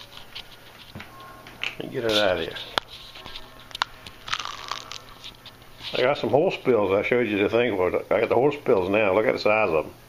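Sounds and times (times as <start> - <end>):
small crackles: 0.0 - 6.0
rustling and crinkling handling: 0.0 - 6.8
man speaking: 1.8 - 2.7, 5.9 - 10.0.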